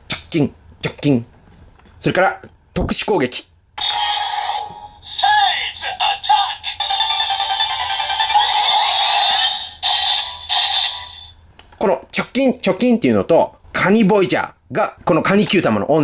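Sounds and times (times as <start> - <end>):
toy electronic voice calls: 3.8 - 11.3
toy speaker music: 3.8 - 11.3.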